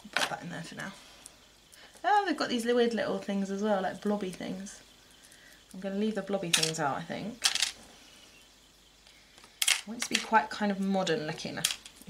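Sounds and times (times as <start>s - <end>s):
person speaking: 9.8s - 11.8s.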